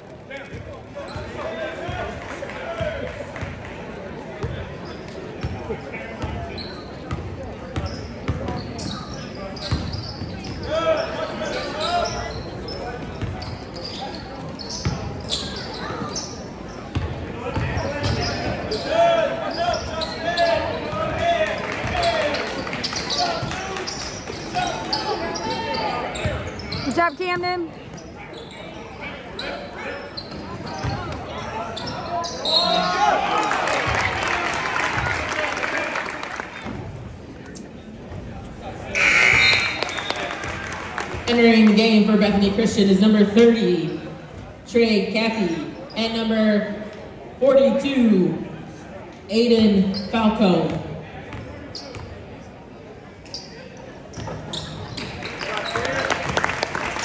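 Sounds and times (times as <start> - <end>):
voices echoing in hall: 0.0 - 57.0.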